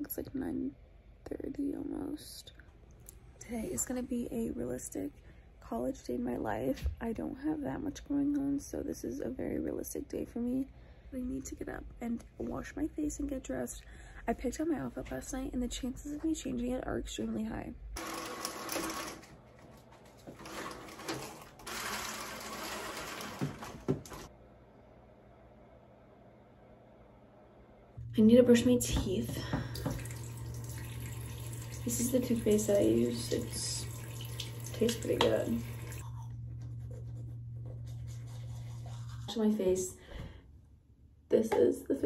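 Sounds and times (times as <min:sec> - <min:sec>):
window blind slats clattering: 0:18.0 - 0:24.3
steady low hum: 0:24.3 - 0:41.5
toothbrush scrubbing teeth: 0:36.6 - 0:39.5.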